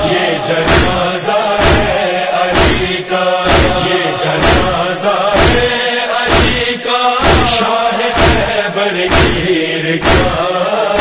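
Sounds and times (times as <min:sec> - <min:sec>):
voices chanting: 0:00.0 - 0:11.0
chest slaps: 0:00.7 - 0:01.0, 0:01.6 - 0:02.9, 0:03.5 - 0:04.8, 0:05.4 - 0:05.7, 0:06.3 - 0:06.6, 0:07.2 - 0:07.6, 0:08.2 - 0:08.5, 0:09.1 - 0:10.4.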